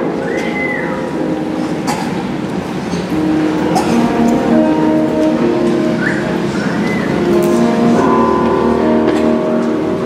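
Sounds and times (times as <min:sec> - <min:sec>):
live song with held chords: 0:00.0 - 0:10.0.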